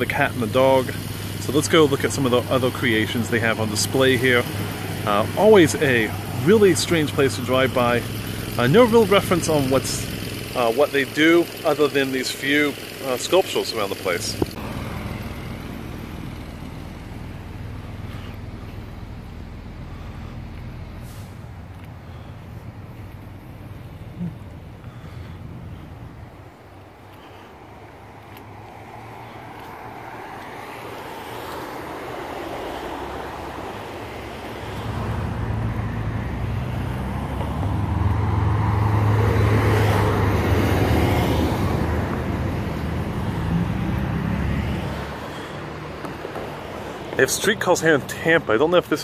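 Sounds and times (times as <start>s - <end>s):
road traffic rumble: 0.0s - 49.0s
vehicle engine hum: 0.0s - 49.0s.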